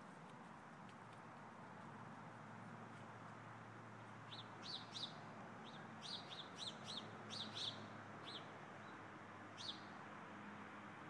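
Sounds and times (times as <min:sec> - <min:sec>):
small bird chirping: 0:04.3 - 0:08.5, 0:09.6 - 0:09.9.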